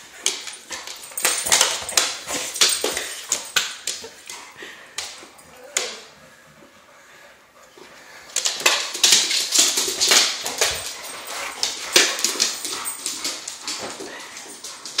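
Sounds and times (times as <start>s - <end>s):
dogs growling and barking: 0.5s - 15.0s.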